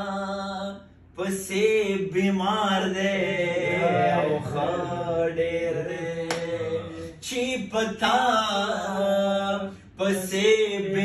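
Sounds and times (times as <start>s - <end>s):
man singing unaccompanied: 0.0s - 11.0s.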